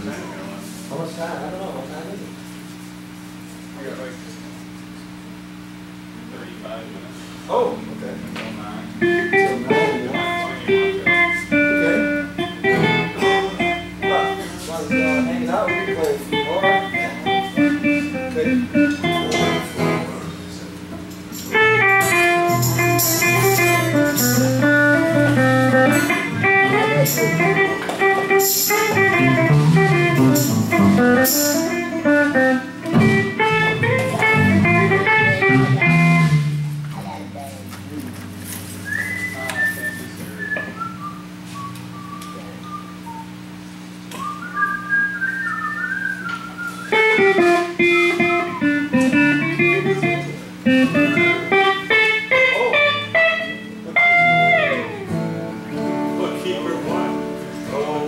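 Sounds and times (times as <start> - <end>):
amplifier hum: 0.0 - 58.0
electric guitar single-note runs: 7.5 - 38.6, 46.8 - 58.0
bass and drums jam: 21.1 - 37.9, 46.9 - 52.4.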